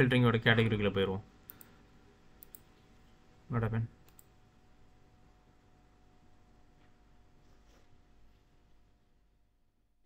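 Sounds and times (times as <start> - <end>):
computer mouse clicks: 1.5 - 1.8, 2.4 - 2.7, 4.0 - 4.3.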